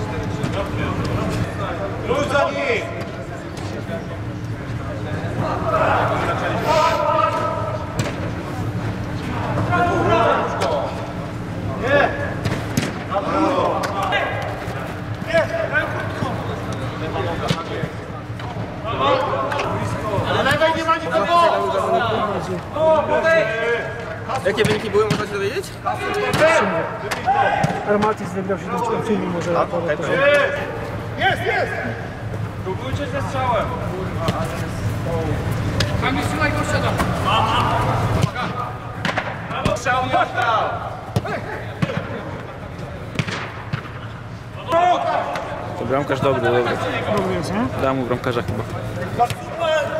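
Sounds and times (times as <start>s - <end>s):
footballers shouting: 5.2s - 8.1s, 9.2s - 18.0s, 18.8s - 29.4s, 30.0s - 47.4s, 49.0s - 49.9s
players shouting: 5.3s - 8.0s, 25.8s - 29.3s, 35.7s - 47.3s.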